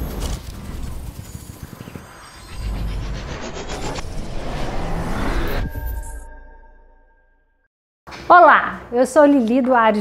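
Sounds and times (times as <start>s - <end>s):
rising sweep: 1.6s - 7.6s.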